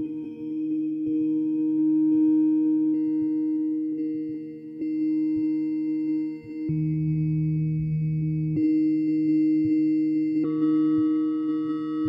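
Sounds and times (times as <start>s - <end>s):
ambient synthesizer drone music: 0.0s - 12.0s.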